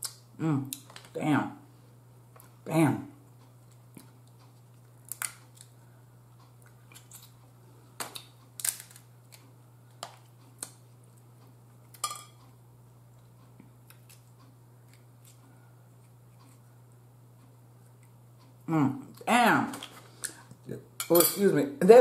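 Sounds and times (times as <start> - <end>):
crab shells cracking: 4.9 - 5.8, 8.0 - 10.8.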